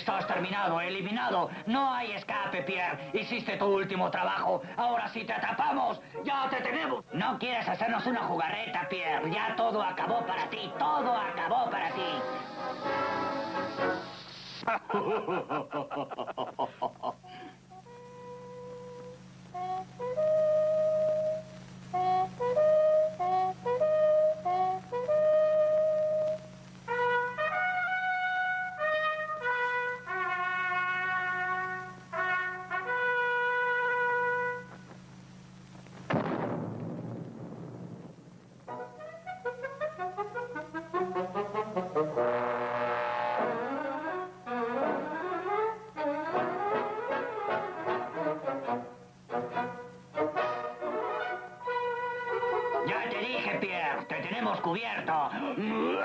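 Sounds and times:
brass-led orchestral cartoon music: 0:10.2 - 0:14.2, 0:26.9 - 0:34.6, 0:38.7 - 0:53.1
bugle call: 0:19.6 - 0:34.8.

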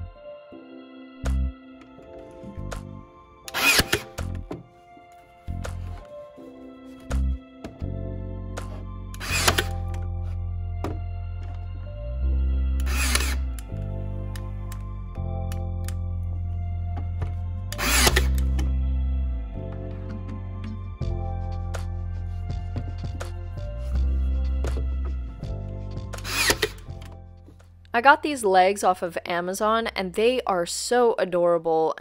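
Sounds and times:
background music: 0:00.0 - 0:32.0
nail gun whirring and snapping: 0:03.5 - 0:04.2, 0:09.2 - 0:09.9, 0:12.8 - 0:13.6, 0:17.8 - 0:18.6, 0:26.2 - 0:26.8.

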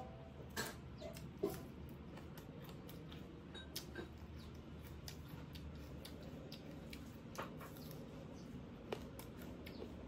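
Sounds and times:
low steady hum: 0:00.0 - 0:10.0
person chewing with wet smacks: 0:00.0 - 0:10.0.

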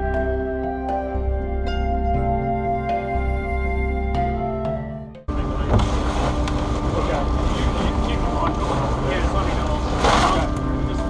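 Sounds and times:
music: 0:00.0 - 0:11.0
ship engine rumble and hum: 0:00.0 - 0:11.0.

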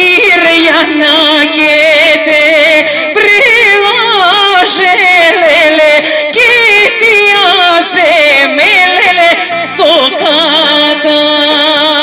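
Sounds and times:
woman singing folk song: 0:00.0 - 0:12.0.

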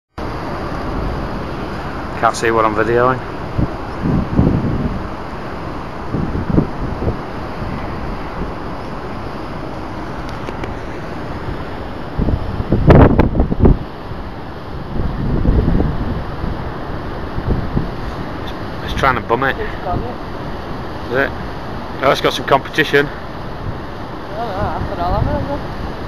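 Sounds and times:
steady background rumble: 0:00.2 - 0:26.0
wind buffeting microphone: 0:00.2 - 0:26.0.

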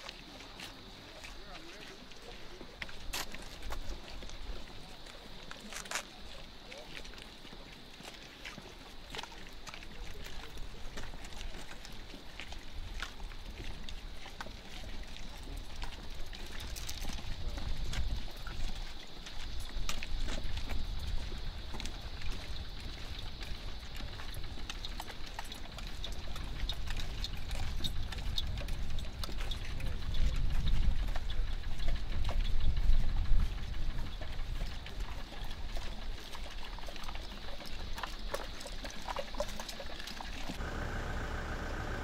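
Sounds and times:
boots marching on dirt road: 0:00.0 - 0:42.0
soldiers' footsteps and clinking gear: 0:00.0 - 0:42.0
low wind rumble on microphone: 0:26.4 - 0:34.9.

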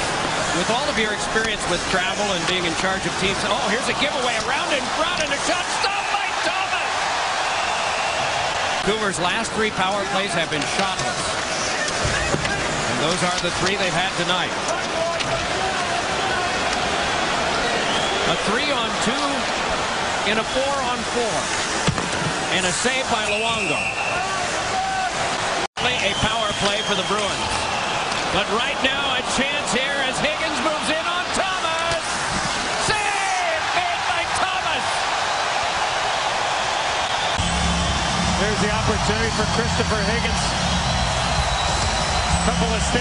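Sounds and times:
arena crowd noise: 0:00.0 - 0:43.0.

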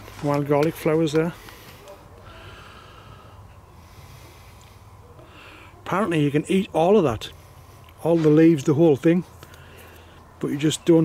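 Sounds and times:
low steady hum: 0:00.0 - 0:11.0
faint breathing: 0:01.3 - 0:05.8, 0:07.3 - 0:08.0, 0:09.4 - 0:10.4.

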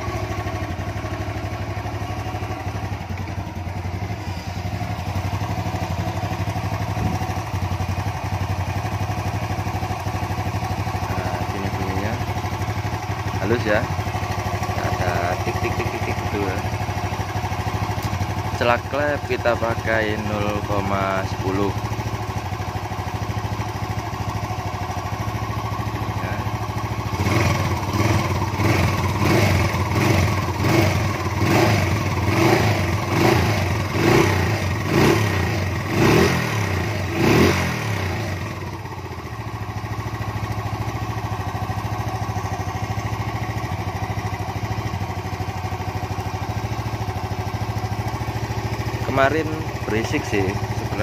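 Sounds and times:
motorcycle engine idling and revving: 0:00.0 - 0:51.0.

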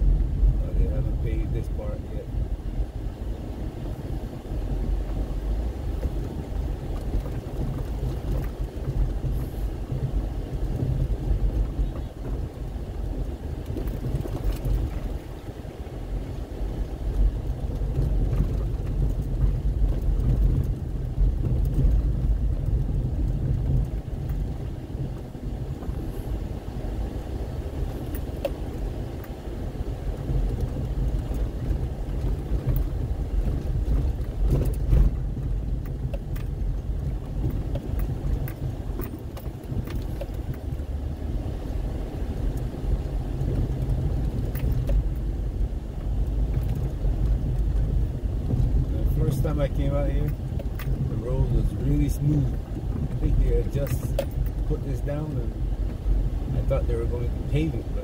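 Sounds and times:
car engine and tyres rumbling: 0:00.0 - 0:58.0.

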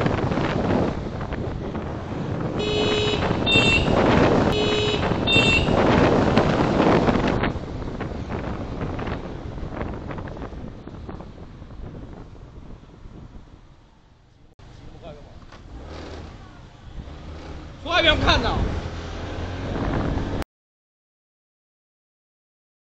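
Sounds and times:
wind buffeting microphone: 0:00.0 - 0:20.4
scooter horn double beeps: 0:02.6 - 0:05.9.

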